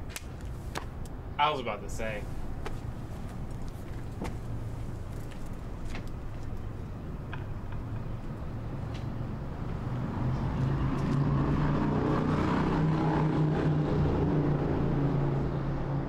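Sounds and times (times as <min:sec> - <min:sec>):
street background noise: 0:00.0 - 0:16.0.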